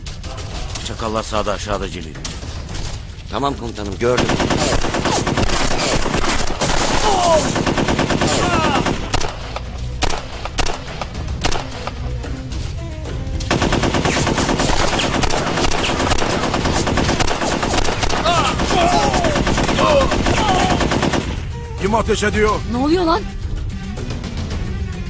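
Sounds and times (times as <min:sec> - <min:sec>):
rapid automatic gunfire: 0:04.0 - 0:11.6, 0:13.5 - 0:21.5.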